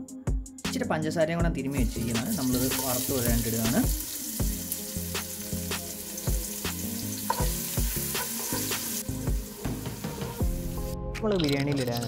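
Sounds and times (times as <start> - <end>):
onions sizzling in hot oil: 2.0 - 10.8
stirring clicks: 11.2 - 12.0.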